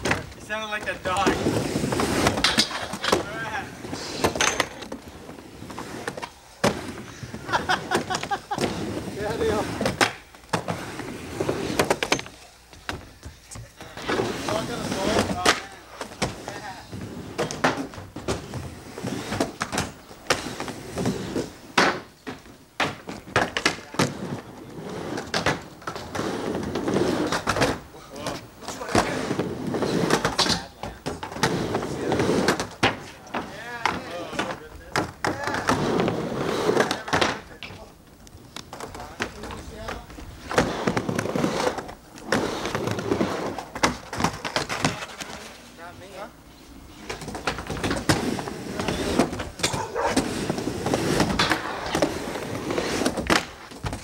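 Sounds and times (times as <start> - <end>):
skateboard wheels rolling on ramp: 0.0 - 54.0.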